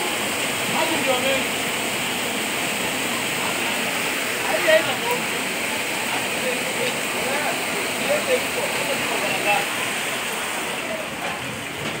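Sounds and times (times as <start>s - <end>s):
floodwater rushing: 0.0s - 12.0s.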